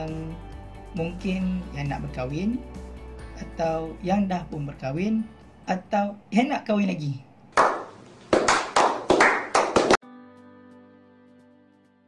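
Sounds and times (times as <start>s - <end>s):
people clapping: 7.6s - 10.0s.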